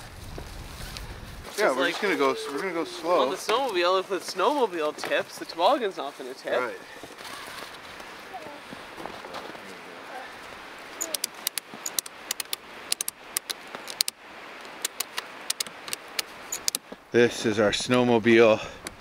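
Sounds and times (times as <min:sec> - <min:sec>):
outdoor hiss: 0:00.0 - 0:19.0
ratchet strap clicking: 0:11.0 - 0:14.2, 0:14.8 - 0:16.8.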